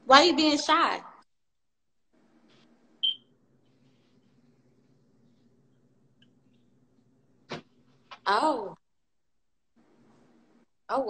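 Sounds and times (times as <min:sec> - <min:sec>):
faint low room hum: 0:02.1 - 0:11.0.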